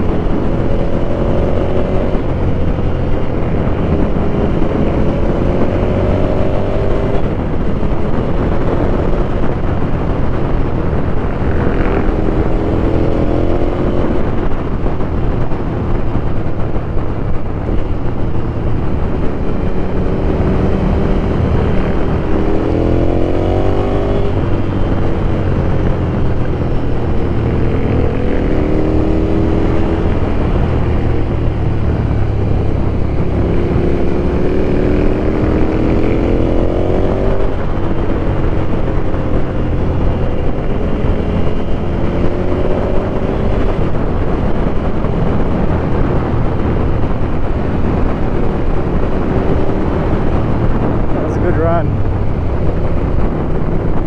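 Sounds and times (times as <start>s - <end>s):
motorcycle engine accelerating: 0.0s - 54.0s.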